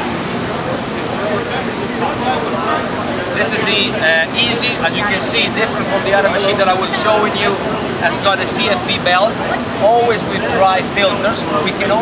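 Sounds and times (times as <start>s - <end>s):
indistinct voices: 0.0s - 12.0s
machine noise: 0.0s - 12.0s.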